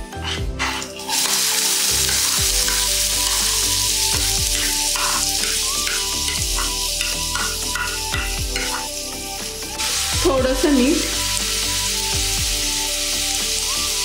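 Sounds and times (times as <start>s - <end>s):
spoon stirring in pan: 0.1s - 8.9s
onions sizzling in hot oil: 0.2s - 14.0s.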